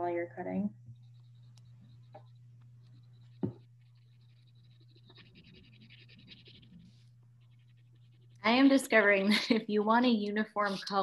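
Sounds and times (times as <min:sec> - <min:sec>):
steady low hum: 0:00.0 - 0:11.0
crayon scratching on paper: 0:01.0 - 0:08.8.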